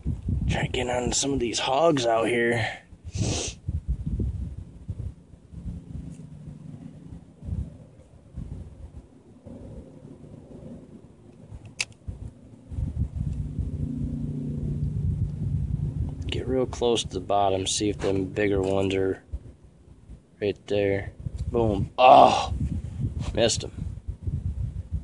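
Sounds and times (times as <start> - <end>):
wind buffeting microphone: 0.0 - 25.0
sharp click: 11.3 - 12.1.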